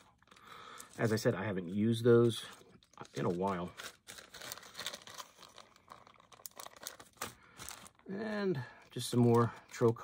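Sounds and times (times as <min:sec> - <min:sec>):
plastic bag crinkling: 0:00.0 - 0:10.0.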